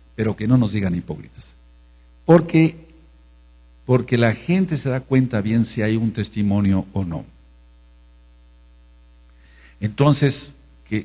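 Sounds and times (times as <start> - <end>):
electrical mains hum: 0.0 - 11.0
person speaking: 0.2 - 1.6, 2.2 - 3.1, 3.8 - 7.4, 9.7 - 11.0.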